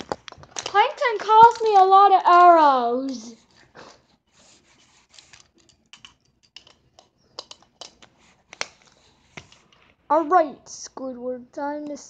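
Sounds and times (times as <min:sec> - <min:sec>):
plastic toy figures clicking: 0:00.0 - 0:03.3, 0:05.3 - 0:08.9.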